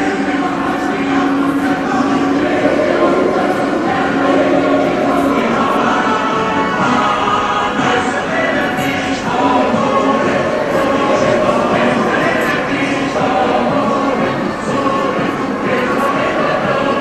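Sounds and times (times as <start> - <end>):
choir singing long notes: 0.0 - 17.0.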